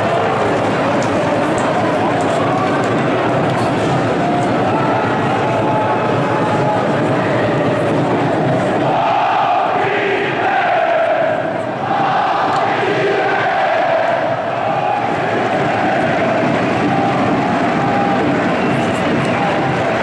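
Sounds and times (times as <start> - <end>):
football crowd chanting: 4.2 - 20.0.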